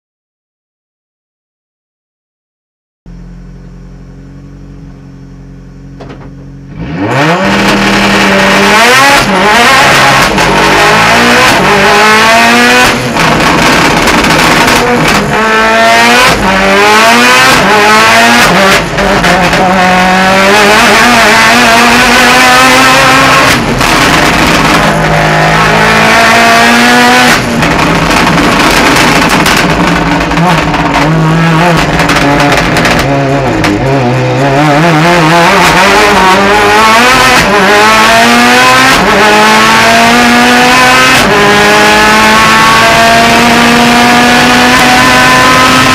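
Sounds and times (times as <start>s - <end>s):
race car engine revving: 3.1s - 45.9s.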